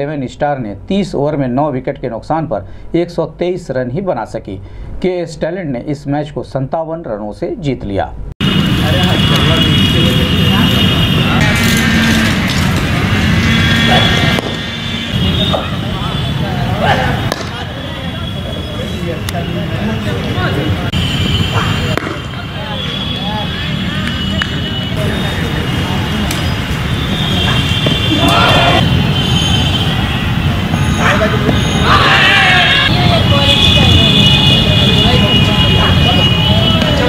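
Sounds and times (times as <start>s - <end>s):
cricket bat striking ball: 13.9s - 14.7s, 17.2s - 17.7s, 21.5s - 22.4s, 27.8s - 28.0s.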